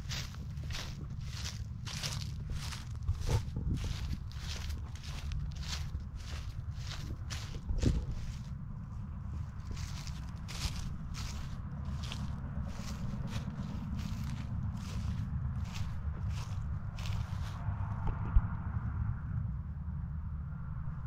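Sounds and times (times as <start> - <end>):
footsteps crunching through dry grass: 0.0 - 18.4
low rumble: 0.0 - 21.0.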